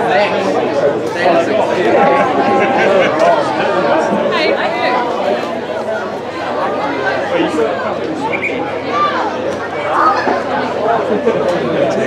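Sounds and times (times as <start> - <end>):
indistinct chatter of people: 0.0 - 12.0.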